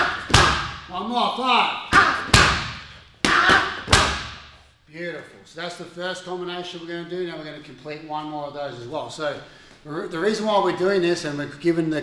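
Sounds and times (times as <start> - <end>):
punches thudding on punching bag: 0.0 - 0.9, 1.9 - 4.5.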